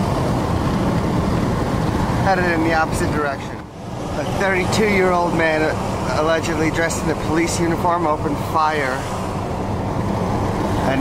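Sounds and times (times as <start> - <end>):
vehicle road rumble: 0.0 - 11.0.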